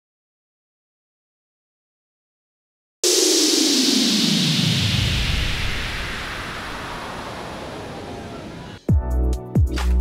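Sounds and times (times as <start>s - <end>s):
electronic whoosh sweeping down: 3.0s - 8.8s.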